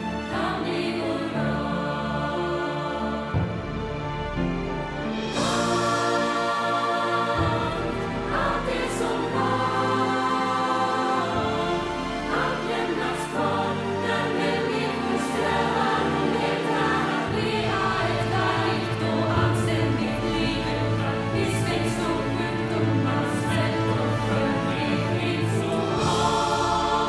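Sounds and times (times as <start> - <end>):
ensemble singing in chorus: 0.0 - 27.0
instrumental accompaniment: 0.0 - 27.0.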